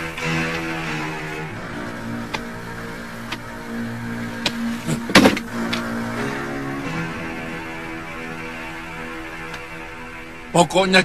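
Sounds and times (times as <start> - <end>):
low held score notes: 0.0 - 11.0.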